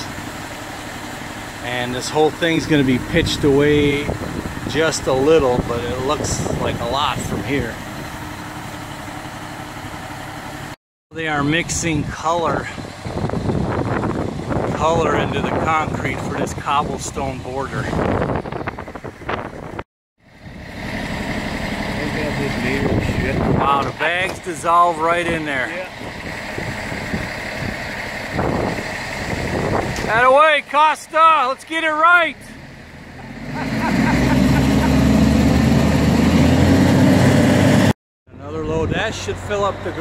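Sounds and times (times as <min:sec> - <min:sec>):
diesel engine idling: 0:00.0 - 0:40.0.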